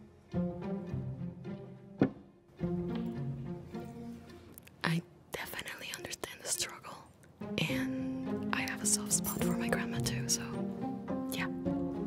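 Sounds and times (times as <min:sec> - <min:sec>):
plucked and bowed strings music: 0:00.0 - 0:04.6, 0:07.3 - 0:12.0.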